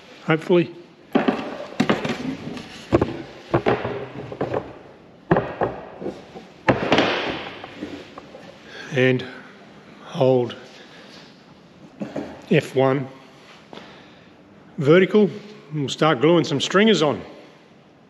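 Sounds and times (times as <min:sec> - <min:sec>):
wooden knocks and thunks: 0:01.1 - 0:08.5
scraping and handling noise: 0:01.1 - 0:08.7.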